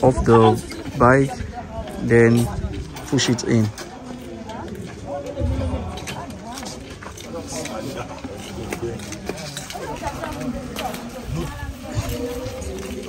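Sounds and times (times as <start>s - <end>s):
low rumble: 5.3s - 7.2s.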